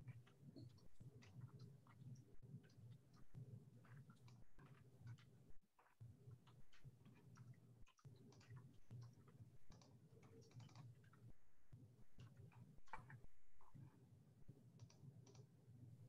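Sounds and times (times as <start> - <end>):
keyboard and mouse clicks: 6.4 - 11.3, 12.2 - 13.9, 14.7 - 15.5.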